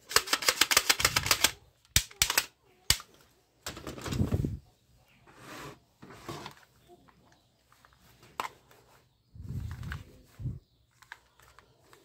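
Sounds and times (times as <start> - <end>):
toy rifle trigger clicking: 0.1 - 3.1.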